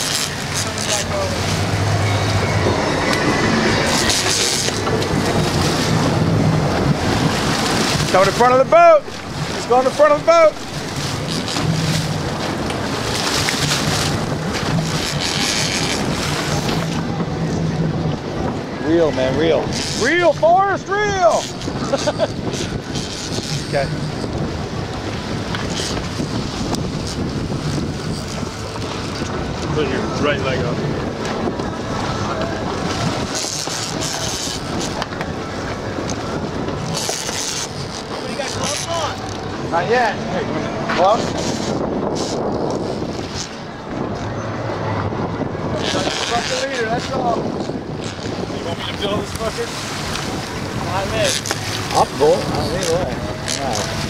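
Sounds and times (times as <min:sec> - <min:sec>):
boat engine humming: 0:00.0 - 0:54.0
water rushing past hull: 0:00.0 - 0:54.0
wind buffeting microphone: 0:00.0 - 0:54.0.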